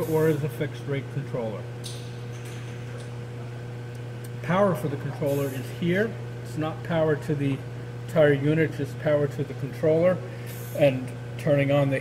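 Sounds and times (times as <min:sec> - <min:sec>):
low hum of running equipment: 0:00.0 - 0:12.0.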